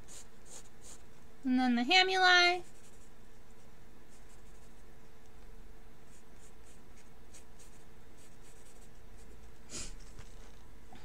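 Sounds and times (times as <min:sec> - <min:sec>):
pencil scratching on paper: 0:00.0 - 0:01.1, 0:02.6 - 0:04.9, 0:06.1 - 0:10.2.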